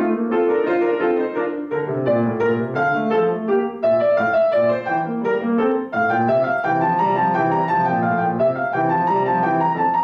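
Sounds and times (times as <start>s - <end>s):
solo piano: 0.0s - 10.0s.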